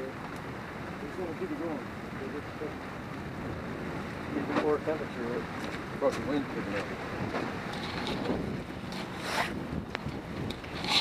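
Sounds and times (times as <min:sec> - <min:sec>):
camera rubbing against clothing: 0:07.7 - 0:09.6.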